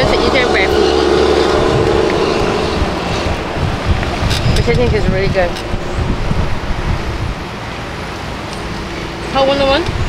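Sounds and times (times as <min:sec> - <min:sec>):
road traffic: 0:00.0 - 0:10.0
wind buffeting microphone: 0:00.0 - 0:10.0.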